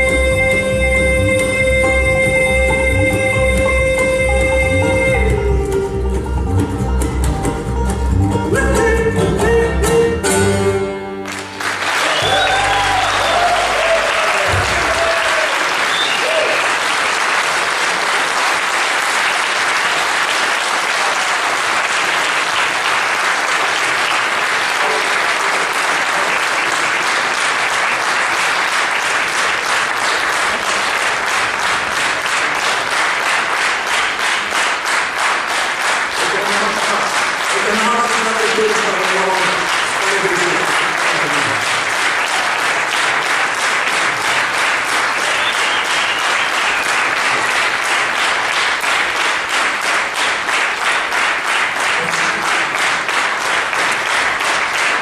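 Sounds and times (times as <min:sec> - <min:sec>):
bluegrass band playing: 0:00.0 - 0:15.1, 0:52.0 - 0:53.4
audience applauding: 0:11.1 - 0:55.0
audience cheering: 0:11.3 - 0:28.4, 0:36.2 - 0:48.5.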